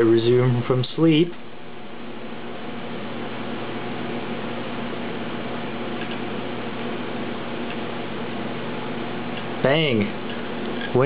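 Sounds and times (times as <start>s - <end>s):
hard drive whirring: 0.0s - 11.0s
hard drive ticks: 5.9s - 8.0s, 9.3s - 9.6s.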